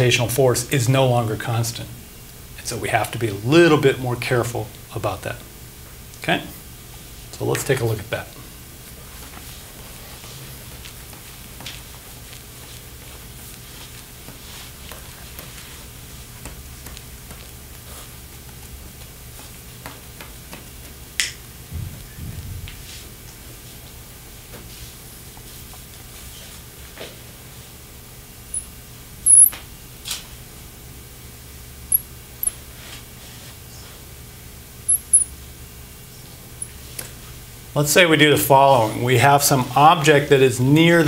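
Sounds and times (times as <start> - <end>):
low room hum: 0.0 - 41.0.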